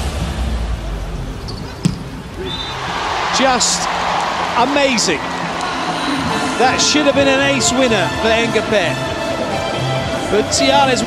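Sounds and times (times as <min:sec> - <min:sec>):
arena crowd noise: 0:00.8 - 0:11.0.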